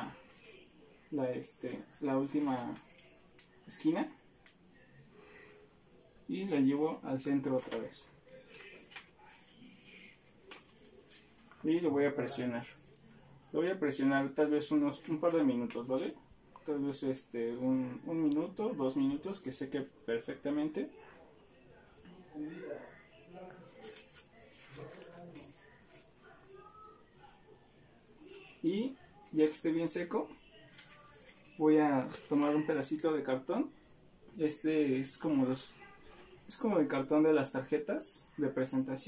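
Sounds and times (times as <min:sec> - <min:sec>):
paper being folded: 0:07.5 - 0:11.6, 0:23.7 - 0:26.1, 0:30.6 - 0:32.6.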